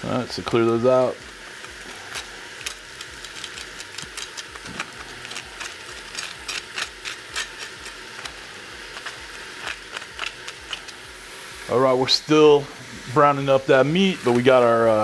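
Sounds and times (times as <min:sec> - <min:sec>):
beef sizzling with pops: 0:00.0 - 0:15.0.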